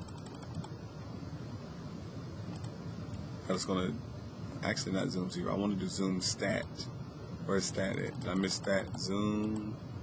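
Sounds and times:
computer keys clicking: 0.0 - 0.8, 8.1 - 9.7
faint low hum: 0.0 - 10.0.

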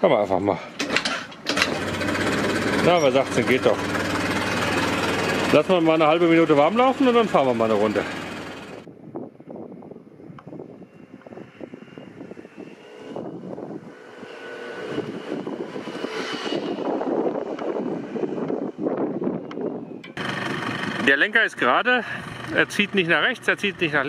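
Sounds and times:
scooter engine running: 0.8 - 8.9, 20.0 - 24.0.

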